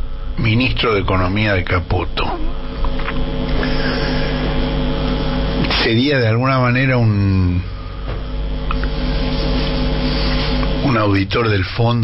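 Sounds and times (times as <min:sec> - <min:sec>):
steady hum with held tones: 0:00.0 - 0:12.0.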